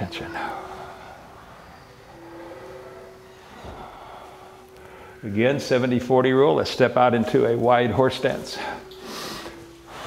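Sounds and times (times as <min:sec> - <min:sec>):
faint steady hum: 0:00.0 - 0:10.0
slow soft breathing: 0:00.3 - 0:05.3, 0:08.6 - 0:10.0.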